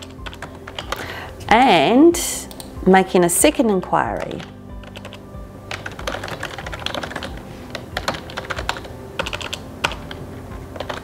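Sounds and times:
typing on computer keyboard: 0:00.0 - 0:01.1, 0:04.2 - 0:10.2, 0:10.8 - 0:11.0.

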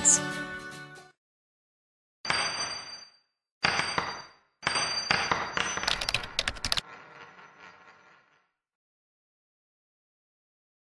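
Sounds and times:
typing clicks: 0:05.8 - 0:06.8.

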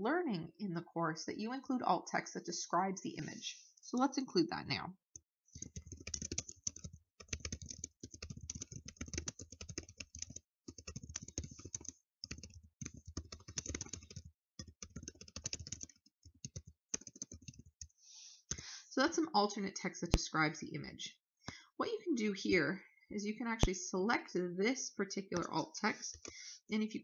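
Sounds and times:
typing on computer keyboard: 0:05.6 - 0:18.7, 0:25.4 - 0:26.4.

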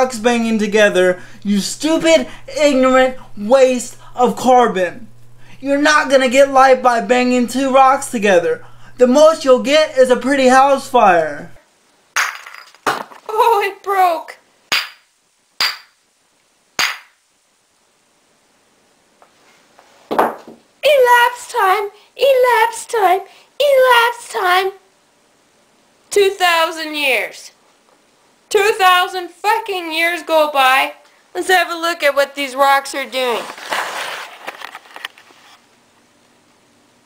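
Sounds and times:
faint room hiss: 0:00.0 - 0:37.0
camera handling rustle: 0:33.5 - 0:35.6.

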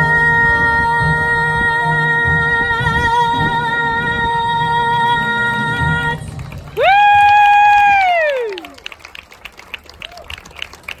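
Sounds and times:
song: 0:00.0 - 0:07.3
scattered applause: 0:05.0 - 0:11.0
person whooping: 0:06.8 - 0:08.8.

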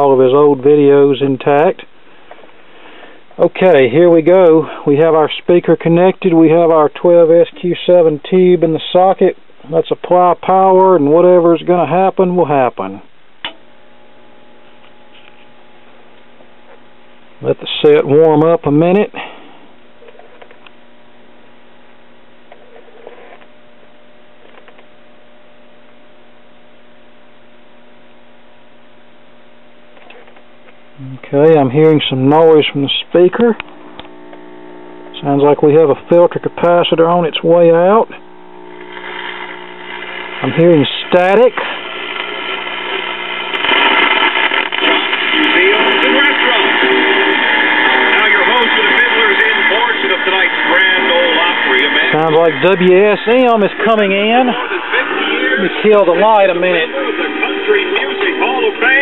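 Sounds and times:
radio speaker hum: 0:00.0 - 0:59.0.

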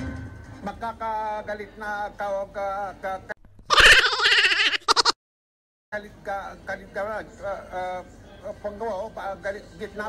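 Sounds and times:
man stuttering: 0:03.5 - 0:05.2.

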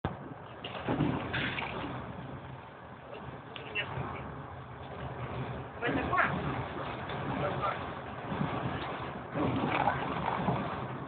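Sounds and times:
train running noise from inside: 0:00.1 - 0:11.0.

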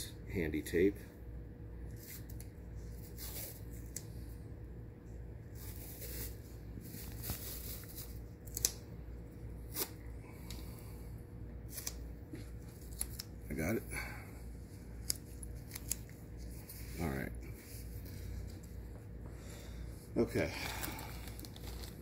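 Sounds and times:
faint steady hum: 0:00.0 - 0:22.0
tape and gauze rustling: 0:05.5 - 0:08.8, 0:14.6 - 0:19.1, 0:20.2 - 0:22.0.

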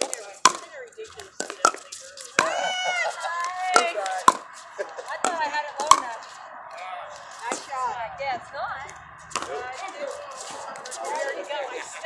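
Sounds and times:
paddles hitting plastic ball: 0:00.0 - 0:06.3, 0:09.3 - 0:09.5.

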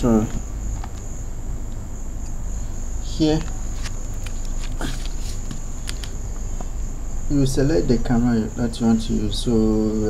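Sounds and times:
high-pitched insect trill: 0:00.0 - 0:10.0
low hum: 0:00.0 - 0:10.0.

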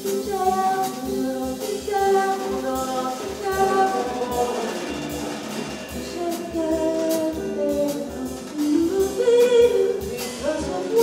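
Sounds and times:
woman singing into microphone: 0:00.0 - 0:05.0, 0:05.9 - 0:11.0
drum kit cymbals: 0:00.0 - 0:11.0.

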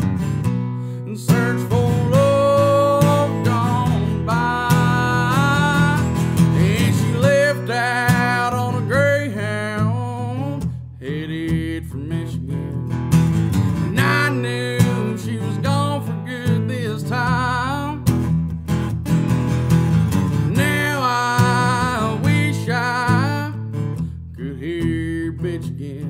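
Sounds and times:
strummed acoustic guitar: 0:00.0 - 0:26.0
man singing: 0:00.9 - 0:13.0, 0:13.7 - 0:18.1, 0:20.3 - 0:26.0.

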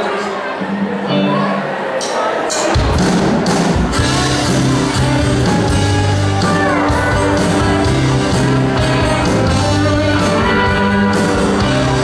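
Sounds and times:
drums: 0:00.5 - 0:12.0
electric guitar: 0:00.6 - 0:02.0, 0:02.7 - 0:12.0
bass: 0:02.8 - 0:12.0
pedal steel guitar: 0:04.0 - 0:12.0.

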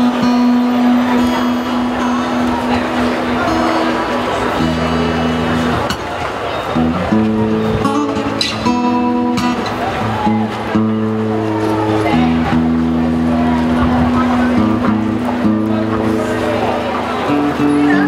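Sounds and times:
acoustic guitar strumming: 0:00.0 - 0:18.0.

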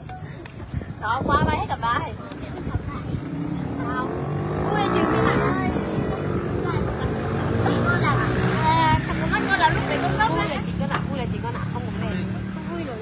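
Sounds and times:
people talking and laughing: 0:00.0 - 0:13.0.

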